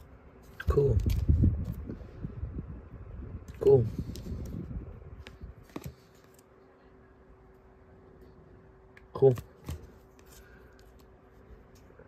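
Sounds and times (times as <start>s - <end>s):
faint steady hum: 0.0s - 12.0s
person speaking: 0.5s - 1.3s, 3.5s - 4.2s.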